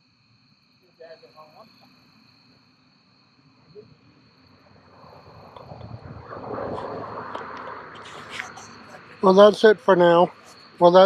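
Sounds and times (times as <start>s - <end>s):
insects chirring: 0.0s - 11.0s
rushing noise with low rumble: 4.5s - 9.4s.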